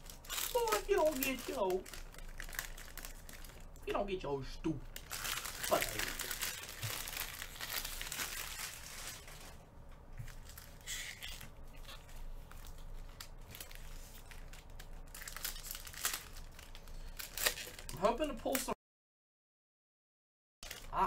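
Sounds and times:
card pack wrappers crinkling: 0.0s - 3.8s, 4.9s - 9.6s, 10.2s - 18.8s, 20.6s - 21.0s.

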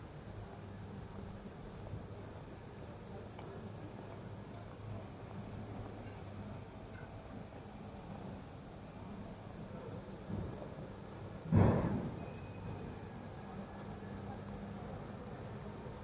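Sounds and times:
loud sudden thump: 11.5s - 12.2s
faint knock: 11.5s - 12.3s.

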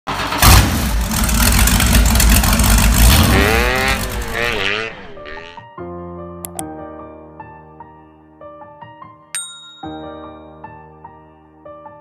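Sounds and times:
engine revving: 0.1s - 5.6s.

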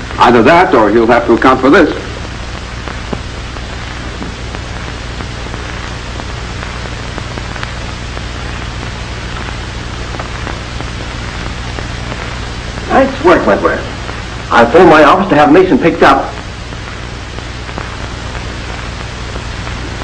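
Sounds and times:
film soundtrack hiss and crackle: 0.0s - 20.0s
low steady hum: 0.0s - 20.0s
faint clicks: 2.2s - 12.9s, 16.3s - 20.0s.

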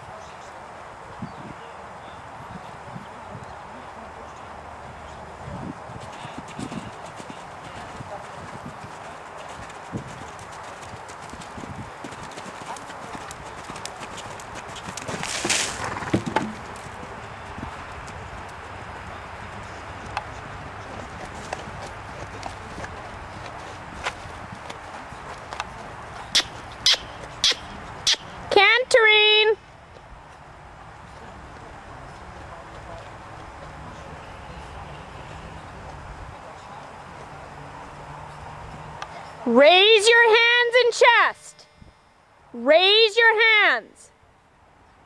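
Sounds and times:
horse hoofbeats on sand: 5.9s - 28.2s.

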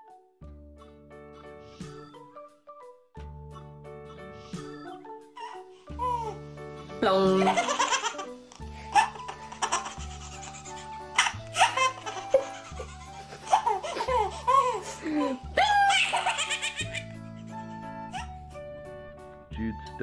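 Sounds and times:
background music with low beat: 0.1s - 7.7s, 9.6s - 20.0s
baby giggling: 7.3s - 17.2s.

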